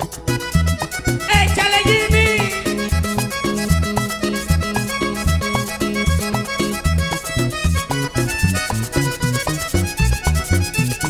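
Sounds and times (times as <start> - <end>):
accordion melody: 0.0 - 11.0
bass line: 0.0 - 11.0
percussion: 0.0 - 11.0.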